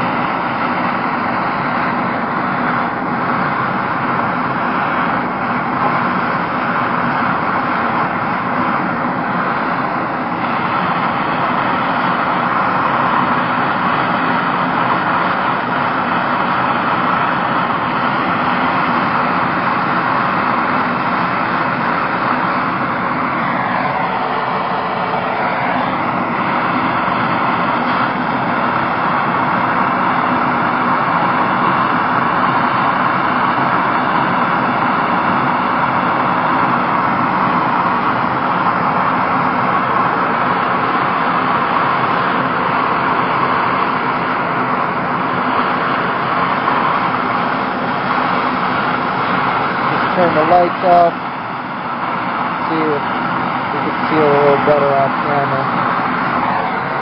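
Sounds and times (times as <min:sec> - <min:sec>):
blow torch flame burning: 0:00.0 - 0:57.0.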